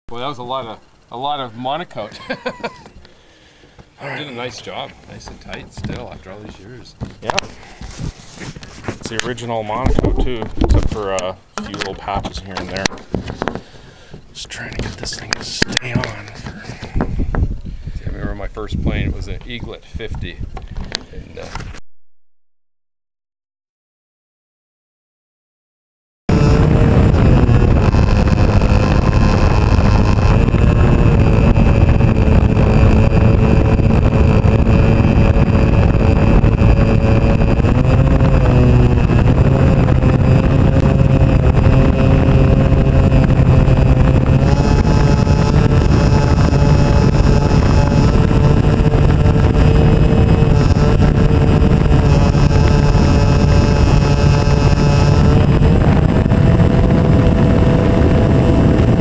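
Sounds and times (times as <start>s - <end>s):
model airplane engine running: 26.3s - 59.0s.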